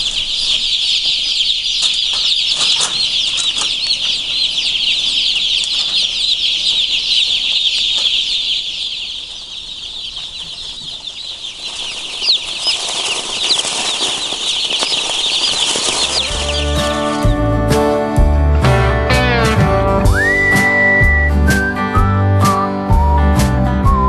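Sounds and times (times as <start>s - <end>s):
chicks peeping: 0.0s - 18.7s, 20.0s - 23.0s.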